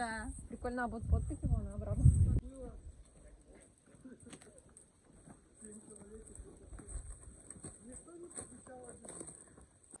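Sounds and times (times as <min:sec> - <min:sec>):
voices outdoors: 0:00.0 - 0:10.0
wind rumble on microphone: 0:00.2 - 0:03.0.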